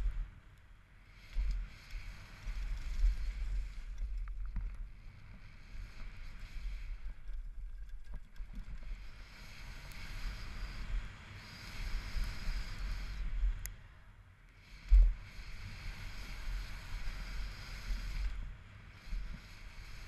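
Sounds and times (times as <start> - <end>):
bike tyres on dirt trail: 0.0 - 13.6
bike clicks and rattles: 1.3 - 5.0, 6.9 - 10.0.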